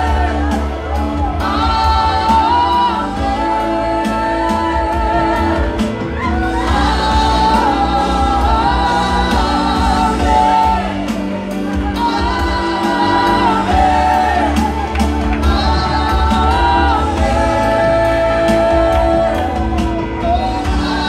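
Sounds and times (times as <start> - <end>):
band with heavy bass and drums: 0.0 - 21.0
voices singing long notes: 0.0 - 21.0.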